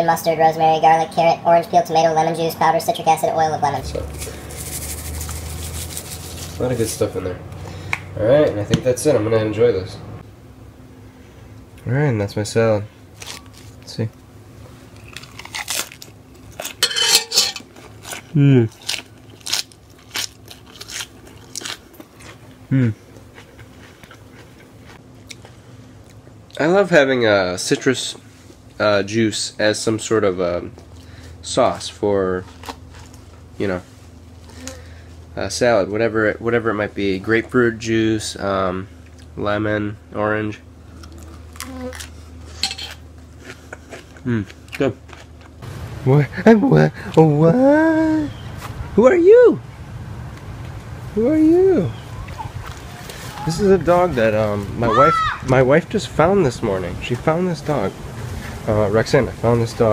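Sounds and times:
steady low hum: 0:00.0 - 0:59.9
lettuce crunching: 0:03.9 - 0:06.8, 0:13.2 - 0:13.9, 0:15.0 - 0:16.9, 0:17.6 - 0:26.2, 0:32.4 - 0:33.4, 0:40.9 - 0:45.6
fork scraping metal pot: 0:16.8 - 0:17.7.

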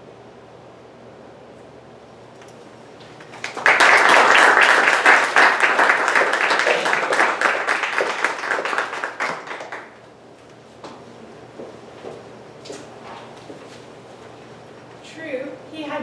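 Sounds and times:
small audience applauding: 0:03.2 - 0:10.1.

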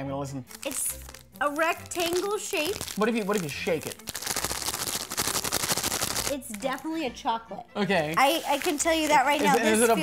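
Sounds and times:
chocolate rattling in package: 0:00.5 - 0:06.7
plastic wrapper crackling: 0:00.5 - 0:06.9, 0:08.1 - 0:09.6.

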